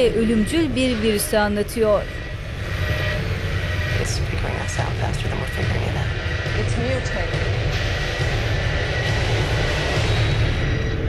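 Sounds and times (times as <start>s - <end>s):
heavy low rumbling drone: 0.0s - 11.0s.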